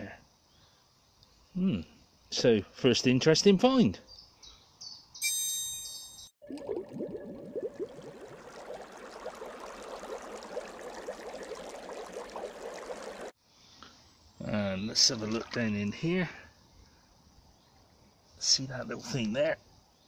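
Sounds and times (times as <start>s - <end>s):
bright chime: 5.2s - 6.3s
bubbling water: 6.4s - 13.4s
running stream water: 6.5s - 13.4s.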